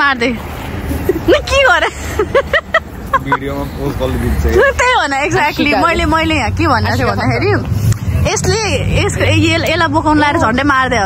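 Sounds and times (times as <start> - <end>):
people talking and exclaiming: 0.0 - 11.0.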